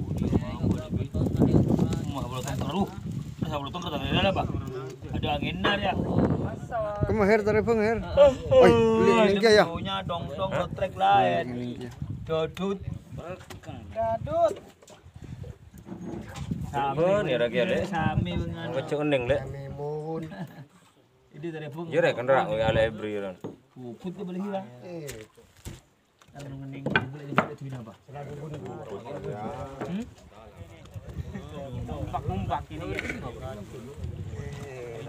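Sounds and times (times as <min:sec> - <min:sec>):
men talking: 0:00.0 - 0:35.0.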